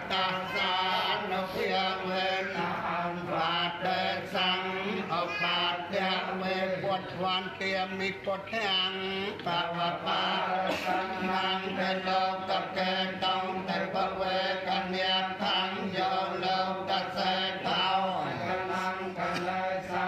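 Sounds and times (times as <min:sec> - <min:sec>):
voices chanting steadily: 0:00.0 - 0:20.0.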